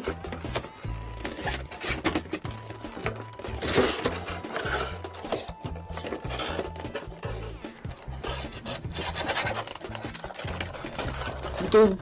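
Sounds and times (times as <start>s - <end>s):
background music: 0.0s - 12.0s
cardboard box rustling: 0.0s - 12.0s
plastic blister being opened: 8.0s - 12.0s.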